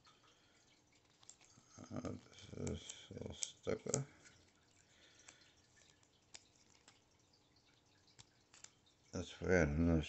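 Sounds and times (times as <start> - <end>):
faint ticks of handled foil packs: 0.2 - 9.0.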